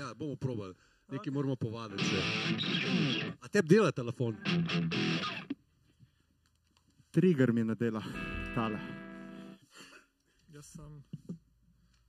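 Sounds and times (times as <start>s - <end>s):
electric guitar burst: 2.0s - 3.4s, 4.3s - 5.6s, 8.0s - 9.6s.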